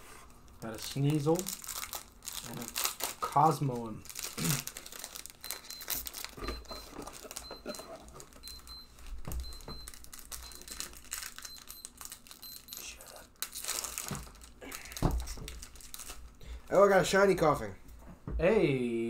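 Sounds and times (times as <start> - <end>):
wrappers crinkling and tearing: 0.4 - 16.4
trading cards rustling: 0.5 - 16.4.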